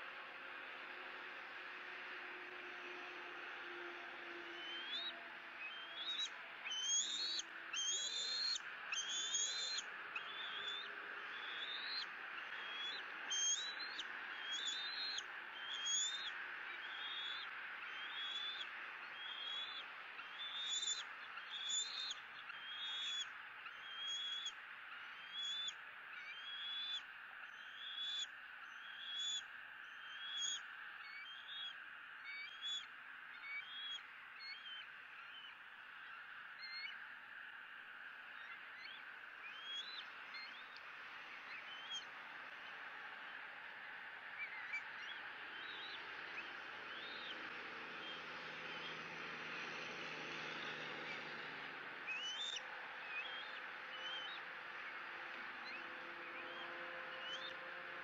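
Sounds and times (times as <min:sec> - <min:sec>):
eaglet begging calls: 0:04.5 - 0:37.0, 0:38.4 - 0:40.7, 0:44.4 - 0:48.2, 0:52.1 - 0:54.4, 0:56.5 - 0:57.5.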